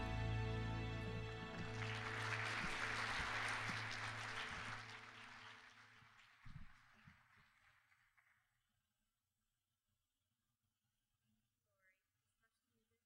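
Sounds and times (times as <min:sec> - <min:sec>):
held accompaniment chord: 0:00.0 - 0:04.8
congregation applauding: 0:00.0 - 0:08.6.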